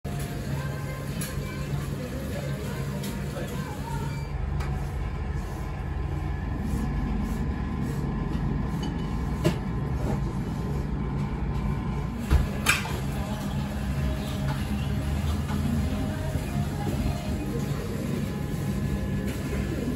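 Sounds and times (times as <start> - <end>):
music: 12.8 - 19.9.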